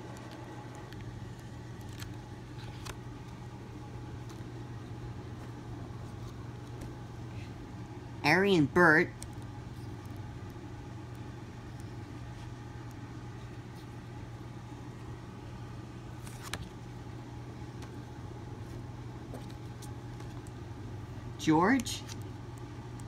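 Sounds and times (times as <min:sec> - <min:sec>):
book pages flipped by hand: 0:00.0 - 0:03.5, 0:05.3 - 0:07.5, 0:16.1 - 0:16.8, 0:18.6 - 0:20.6, 0:22.0 - 0:22.3.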